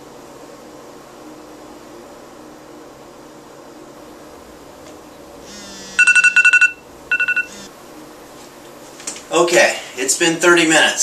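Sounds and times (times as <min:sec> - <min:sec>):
two-toned electronic beeps: 0:06.0 - 0:07.6.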